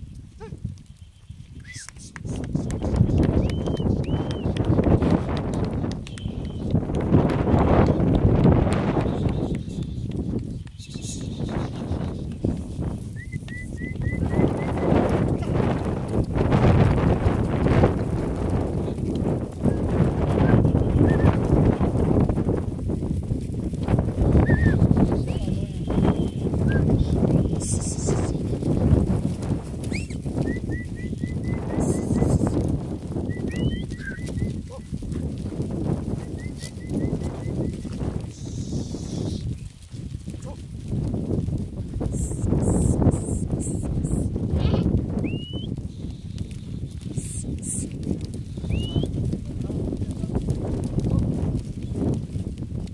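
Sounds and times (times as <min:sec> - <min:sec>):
hooves on dry ground: 0:00.0 - 0:52.9
animals pushing through dry scrub: 0:00.2 - 0:43.4, 0:44.6 - 0:52.9.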